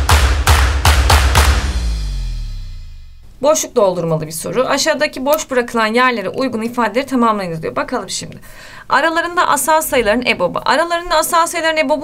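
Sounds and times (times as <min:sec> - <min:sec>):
heavy bass hits: 0:00.0 - 0:03.4
low ringing tail: 0:00.0 - 0:03.4.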